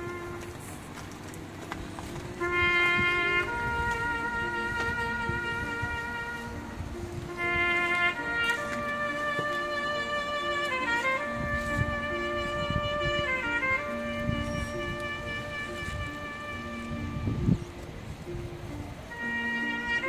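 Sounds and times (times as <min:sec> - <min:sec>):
bugle playing long notes: 0:00.0 - 0:01.0, 0:02.0 - 0:17.9, 0:19.1 - 0:20.0.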